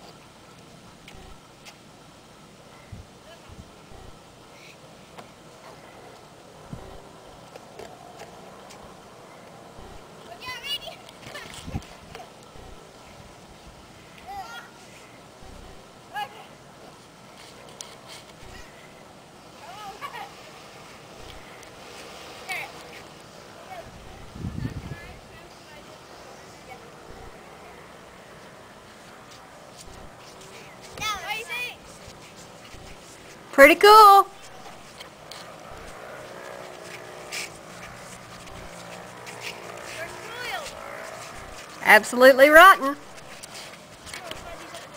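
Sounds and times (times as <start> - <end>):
faint outdoor noise: 0.0 - 44.9
loud voice: 33.6 - 34.3.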